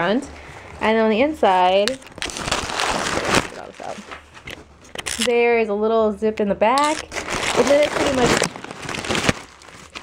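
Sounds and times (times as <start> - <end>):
packing paper rustling and crinkling: 0.4 - 5.3, 6.8 - 10.0.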